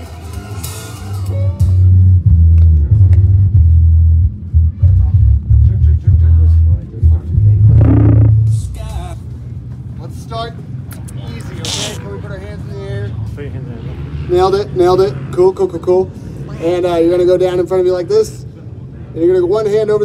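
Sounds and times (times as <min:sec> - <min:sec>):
bass-heavy music over speakers: 0:00.2 - 0:08.8.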